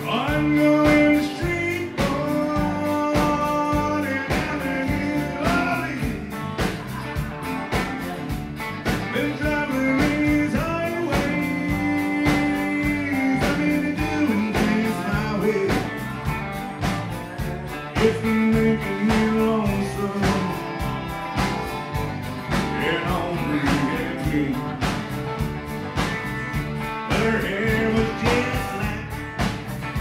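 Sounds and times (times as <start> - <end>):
live country band playing: 0.0 - 30.0.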